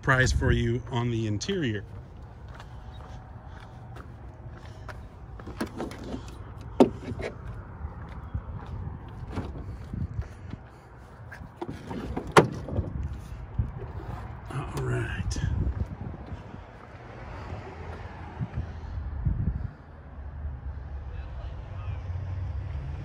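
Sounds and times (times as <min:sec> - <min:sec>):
car hood clunks: 0:05.4 - 0:07.4, 0:09.2 - 0:09.6, 0:11.6 - 0:13.1.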